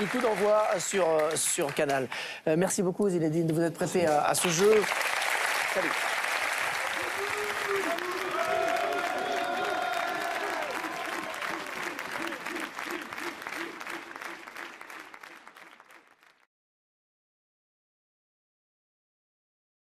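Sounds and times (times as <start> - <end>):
audience applauding: 0.0 - 1.9, 4.4 - 16.5.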